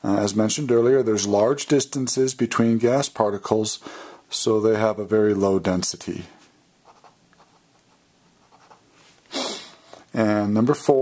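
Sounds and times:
ballpoint pen scratching paper: 0:06.9 - 0:08.8.

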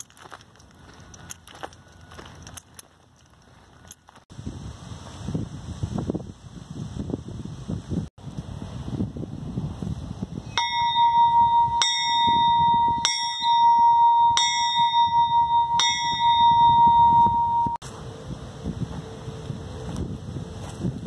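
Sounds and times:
bell ringing: 0:10.5 - 0:17.8.

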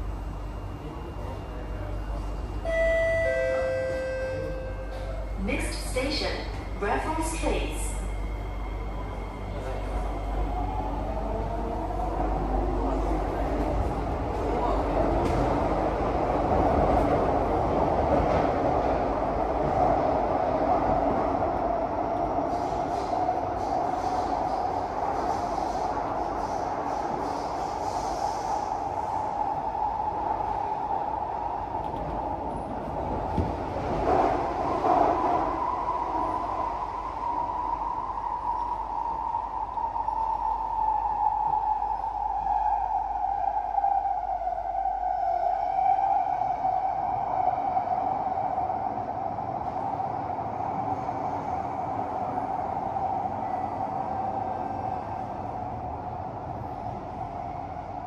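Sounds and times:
train whining tone: 0:00.0 - 0:12.1
train wheels rumbling on rail: 0:00.0 - 0:58.0.

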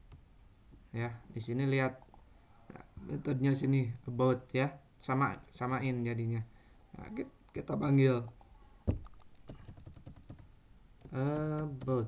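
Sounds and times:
computer keyboard typing: 0:08.3 - 0:12.0.

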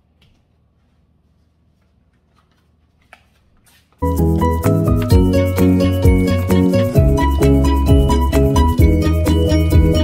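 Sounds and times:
low room hum: 0:00.0 - 0:04.0.

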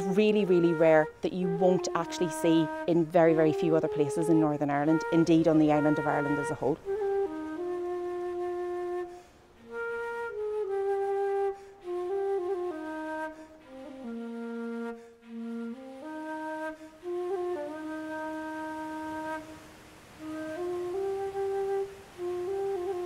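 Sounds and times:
flute-like woodwind melody: 0:00.0 - 0:23.0.

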